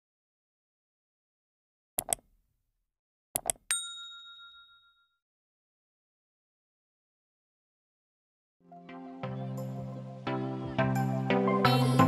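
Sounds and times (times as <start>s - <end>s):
quick double clicks: 2.0s - 2.4s
bright bell ding: 3.7s - 5.2s.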